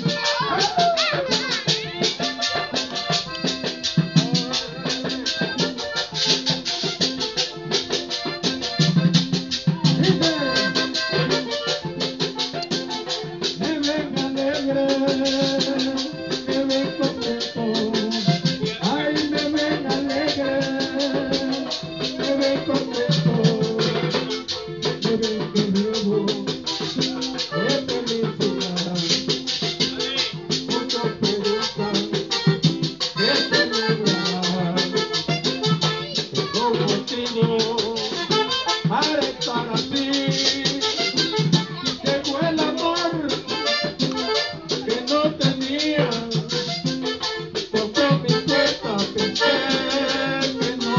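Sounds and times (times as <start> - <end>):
button accordion playing: 0.0 - 50.9
guitar: 0.0 - 50.9
hand drum: 0.0 - 50.9
scraped percussion rhythm: 0.0 - 50.9.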